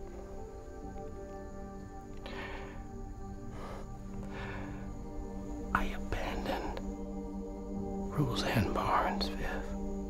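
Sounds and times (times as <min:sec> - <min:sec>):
low musical drone: 0:00.0 - 0:10.0
breathy whispered voice: 0:02.2 - 0:07.2, 0:08.0 - 0:10.0.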